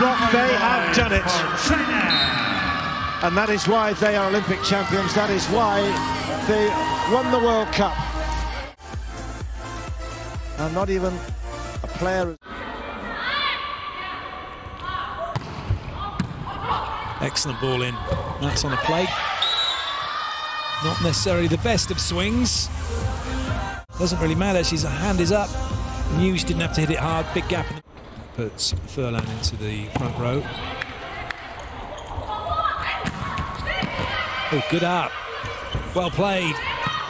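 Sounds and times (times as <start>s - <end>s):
players shouting calls: 0.0s - 8.5s.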